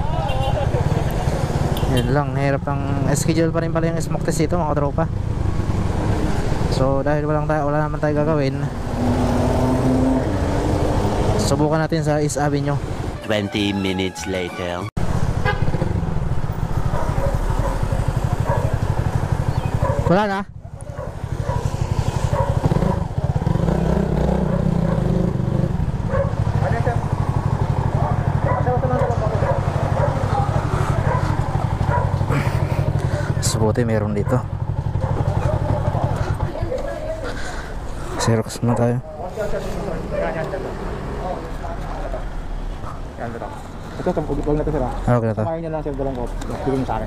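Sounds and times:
motorcycle exhaust pulsing: 0:15.7 - 0:33.4, 0:34.0 - 0:37.2.

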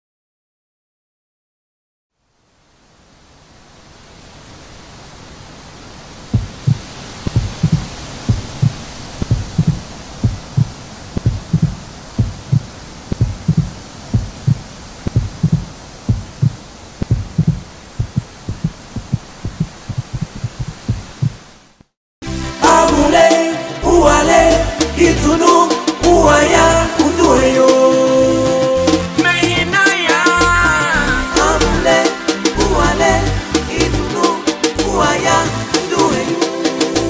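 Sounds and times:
steady rushing hiss: 0:02.2 - 0:37.0
deep heartbeat-like thumps: 0:06.3 - 0:21.5.

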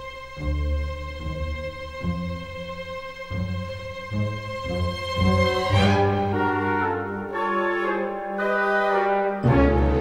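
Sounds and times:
orchestral brass chords: 0:04.1 - 0:10.0.

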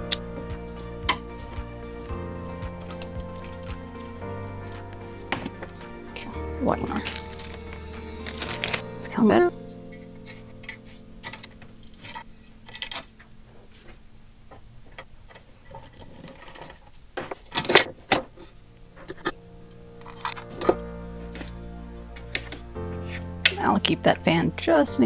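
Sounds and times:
soft background music: 0:00.0 - 0:13.9, 0:17.6 - 0:25.0
screwdriver and screws tapping metal: 0:02.7 - 0:06.3.

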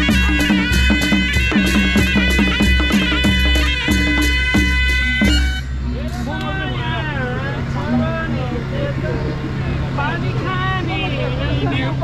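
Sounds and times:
hand-drum strokes: 0:00.0 - 0:06.4
people talking and calling out: 0:00.0 - 0:12.0.

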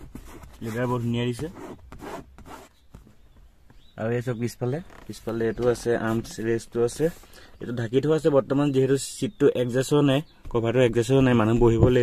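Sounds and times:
hand rubbing upholstery: 0:00.0 - 0:03.8
man's voice: 0:04.0 - 0:12.0.

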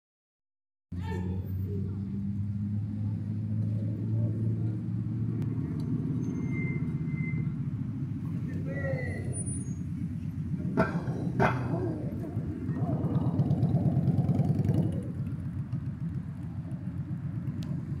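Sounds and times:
car engine drone: 0:00.9 - 0:18.0
road noise: 0:00.9 - 0:18.0.

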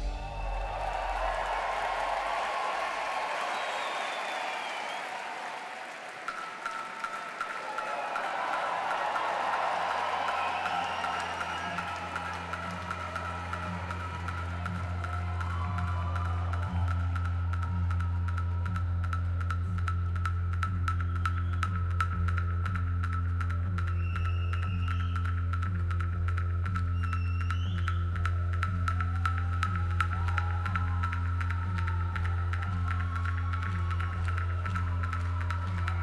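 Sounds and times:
deep bass drone: 0:00.0 - 0:02.4, 0:11.5 - 0:36.0
audience applause and cheering: 0:00.0 - 0:19.7, 0:27.0 - 0:36.0.

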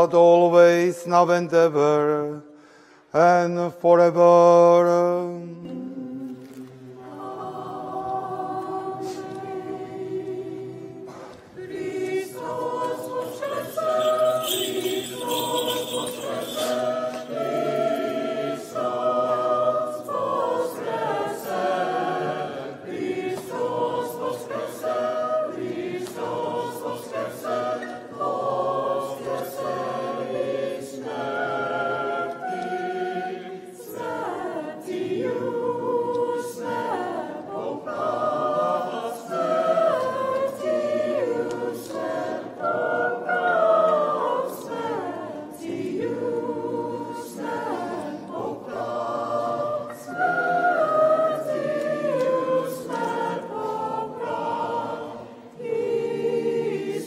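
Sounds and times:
choir chanting a hymn unaccompanied: 0:00.0 - 0:57.0.

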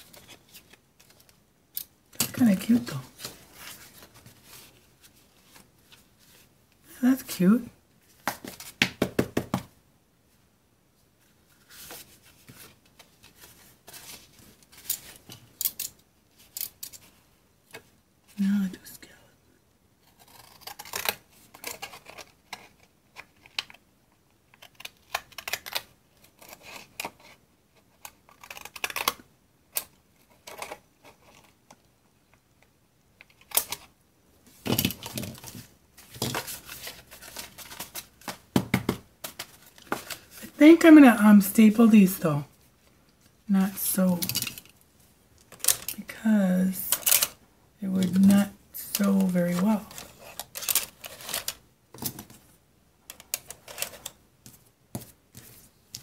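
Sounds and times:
paper rustling: 0:34.6 - 0:38.5.

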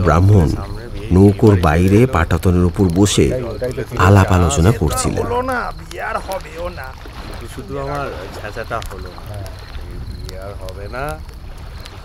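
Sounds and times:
narration: 0:00.0 - 0:11.3
men talking: 0:00.0 - 0:11.4
boat on water ambience: 0:00.0 - 0:12.0.

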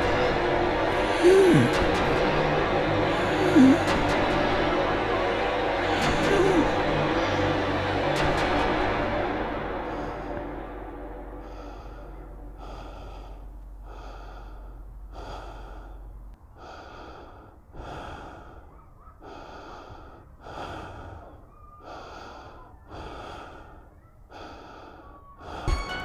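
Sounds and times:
low hum: 0:00.0 - 0:19.1
heavy wheezy breathing: 0:00.0 - 0:26.0.

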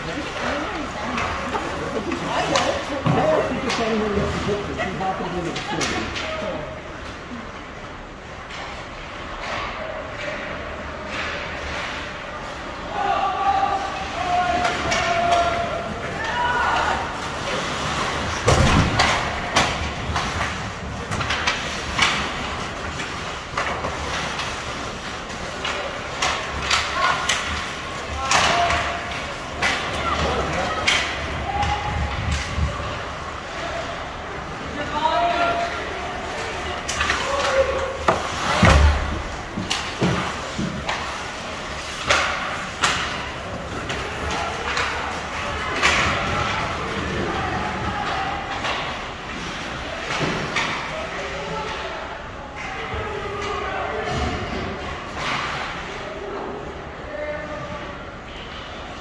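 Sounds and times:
shouting voices: 0:12.8 - 0:18.3, 0:24.1 - 0:49.0
hockey sticks and puck knocking boards: 0:14.0 - 0:33.1, 0:35.2 - 0:50.9.

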